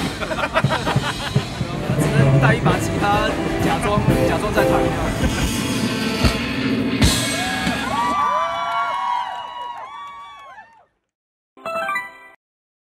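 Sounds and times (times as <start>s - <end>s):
live rock band music: 0.0s - 7.8s
sliding tones: 1.7s - 6.5s.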